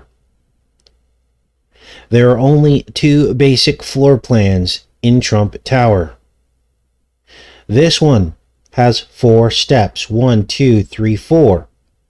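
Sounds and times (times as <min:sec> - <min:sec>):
faint click: 0:00.8 - 0:01.0
soft intake of breath: 0:01.7 - 0:02.2, 0:07.2 - 0:07.7.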